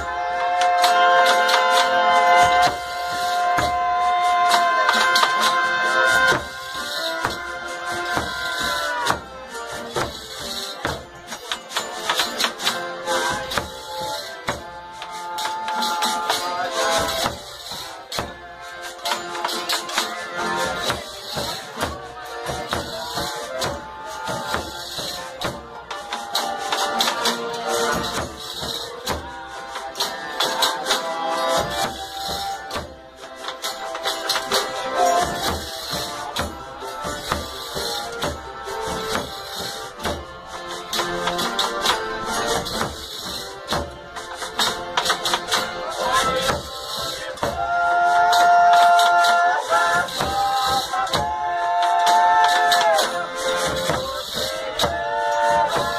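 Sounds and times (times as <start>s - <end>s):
frame drum beat: 0.0s - 18.5s, 31.4s - 55.9s
accordion: 0.0s - 55.9s
acoustic guitars: 0.0s - 55.9s.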